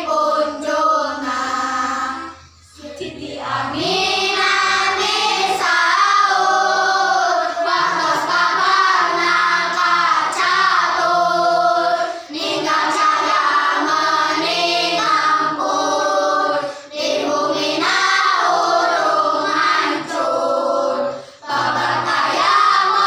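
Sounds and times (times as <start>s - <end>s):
children singing together: 0.0s - 23.0s.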